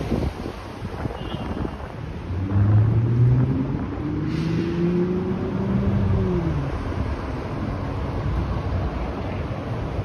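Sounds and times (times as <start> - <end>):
wind noise on microphone: 0.0 - 8.3.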